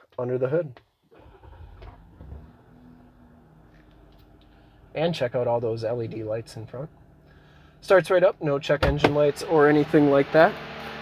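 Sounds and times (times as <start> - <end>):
car engine starting and idling: 1.1 - 11.0.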